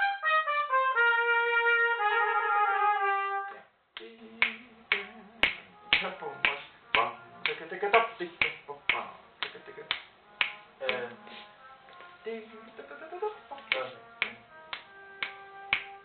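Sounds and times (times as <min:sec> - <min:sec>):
steady beat of sharp clicks: 0:04.0 - 0:11.2, 0:13.5 - 0:16.0.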